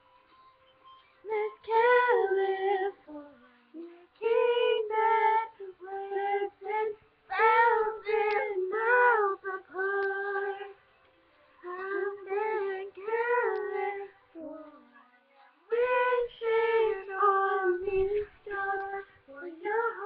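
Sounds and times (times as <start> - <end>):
girls singing unaccompanied: 1.3 - 10.8, 11.6 - 20.0.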